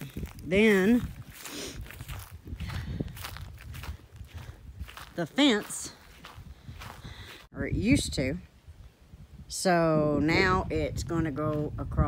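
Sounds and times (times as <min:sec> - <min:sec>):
footsteps on straw and dirt: 0:00.0 - 0:07.5.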